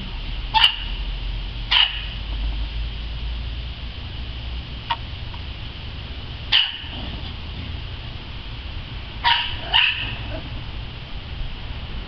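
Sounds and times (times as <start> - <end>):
small dog barking: 0.5 - 1.0, 1.7 - 2.2, 6.5 - 7.4, 9.2 - 10.6.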